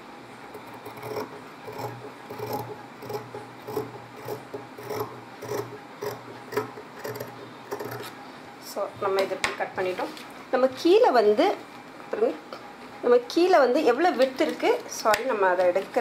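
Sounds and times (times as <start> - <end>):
scissors cutting cloth: 0.8 - 8.2.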